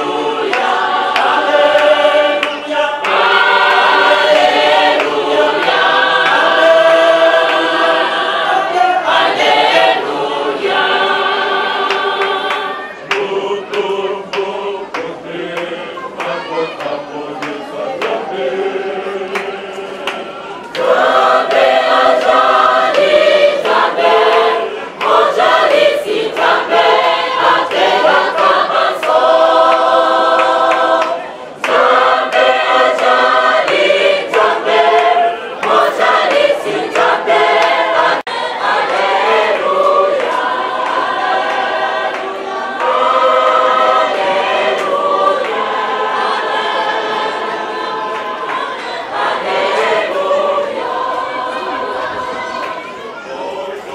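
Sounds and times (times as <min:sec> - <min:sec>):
choir singing a hymn: 0:00.0 - 0:53.9.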